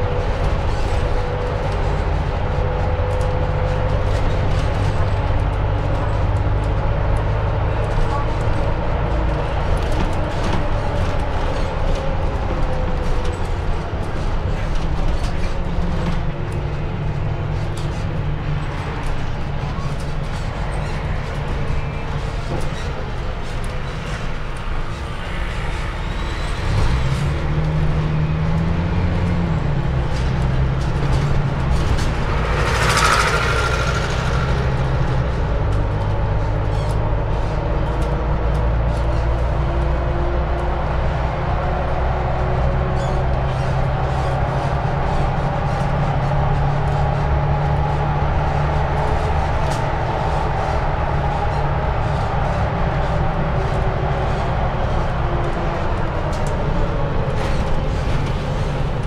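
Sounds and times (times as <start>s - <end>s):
bus engine running: 0.0s - 59.0s.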